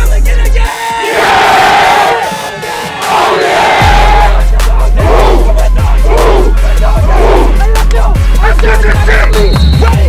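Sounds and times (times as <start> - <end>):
hip hop backing track: 0.0 - 10.0
group of men shouting: 0.6 - 7.6.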